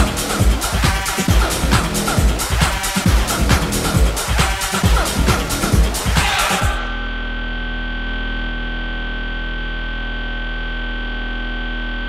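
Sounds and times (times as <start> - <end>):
sustained synthesizer drone: 0.0 - 12.0.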